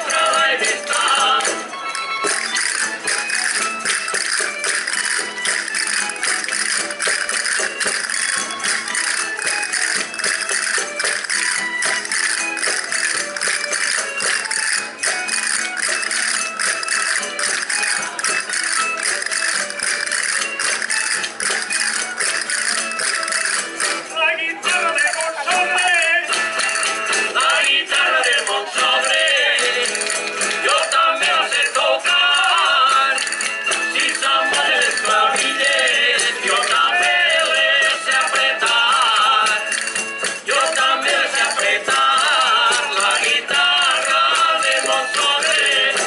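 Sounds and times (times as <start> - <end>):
person singing: 0.0 - 1.7, 24.1 - 46.0
live folk dance music: 0.0 - 46.0
fast rattling percussion clicks: 0.1 - 24.0, 24.9 - 46.0.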